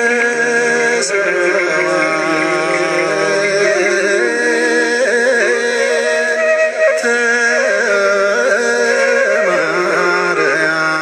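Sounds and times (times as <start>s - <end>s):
solo voice singing a hymn: 0.0s - 6.3s.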